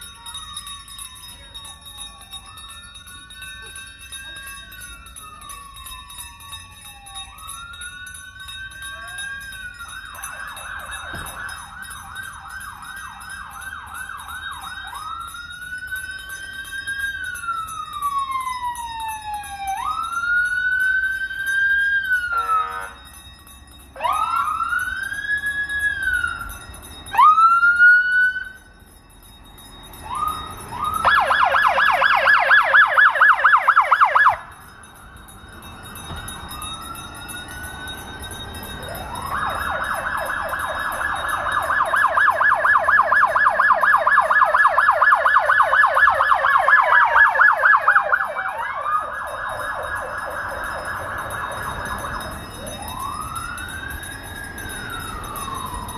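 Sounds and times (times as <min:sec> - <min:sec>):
siren whoops: 0:00.0 - 0:23.1, 0:24.0 - 0:28.7, 0:30.0 - 0:35.2, 0:35.8 - 0:55.9
police sirens wailing and yelping: 0:00.0 - 0:55.9.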